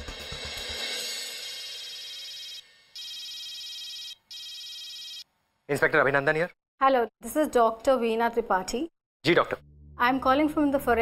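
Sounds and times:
telephone ringing: 1.9s - 5.3s
background music: 9.3s - 11.0s.

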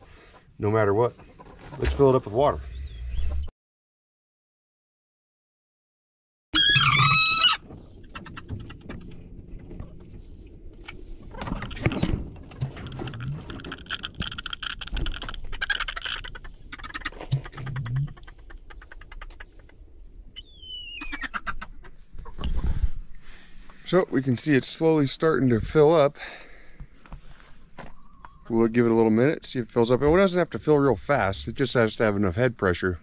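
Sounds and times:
chickens clucking: 0.1s - 3.5s, 6.6s - 23.0s, 27.7s - 29.0s
chicken squawk: 6.5s - 8.9s, 14.8s - 19.7s, 20.4s - 22.7s.

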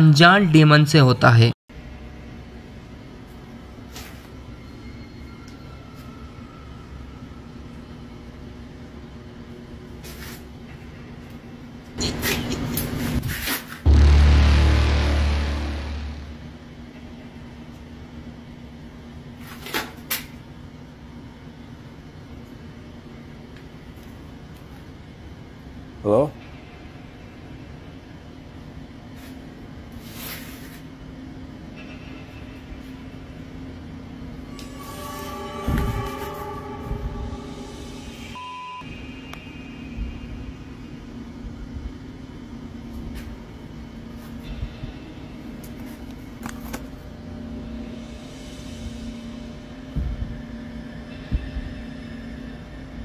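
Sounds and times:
faint rumbling noise: 13.9s - 17.2s
steady low hum: 13.9s - 17.7s, 31.6s - 53.0s
background music: 34.4s - 38.8s
short high beep: 34.5s - 39.8s.

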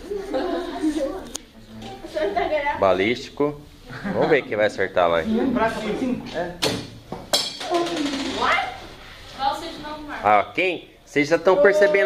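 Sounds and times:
students talking: 0.0s - 6.6s, 11.2s - 12.0s.

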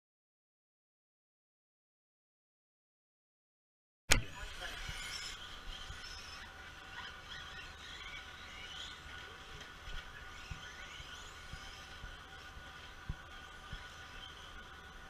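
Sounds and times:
sharp click: 4.1s - 4.3s
radio-controlled car motors whining: 4.1s - 15.0s.

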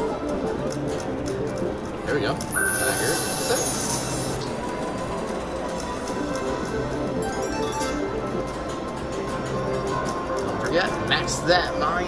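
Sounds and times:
slot machine spin music: 0.0s - 12.0s.

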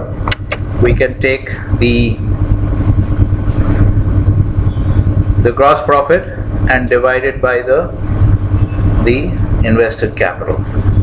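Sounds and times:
faint constant hum: 0.0s - 11.0s
loud low rumble: 0.0s - 11.0s.

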